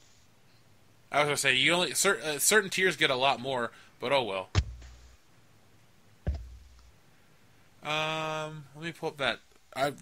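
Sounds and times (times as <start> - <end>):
short low thud: 4.6 - 5.1, 6.2 - 6.9
man speaking: 7.8 - 10.0.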